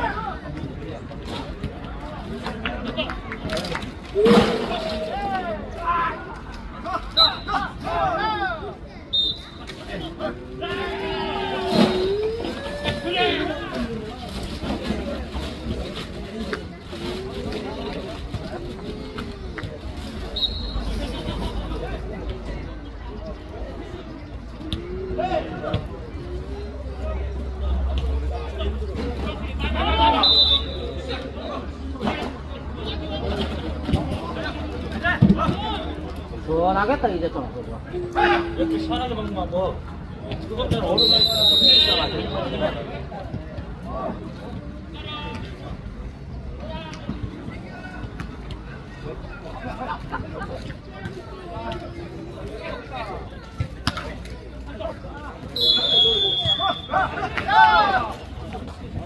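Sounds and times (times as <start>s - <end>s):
players shouting and calling: 0.0s - 15.3s, 16.2s - 59.0s.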